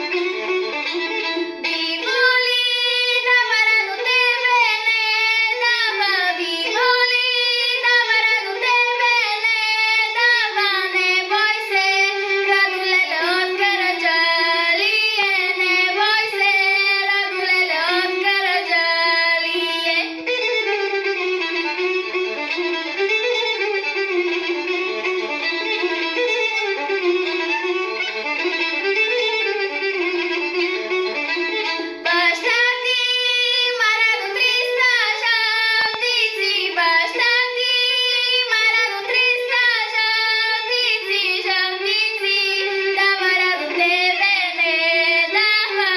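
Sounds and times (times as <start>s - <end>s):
instrumental interlude: 0.0s - 45.9s
girl singing folk song: 1.6s - 20.4s, 32.0s - 45.9s.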